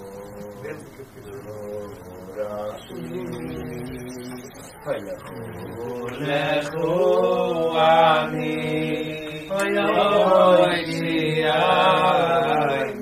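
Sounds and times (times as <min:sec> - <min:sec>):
men singing slow melody: 0:00.0 - 0:13.0.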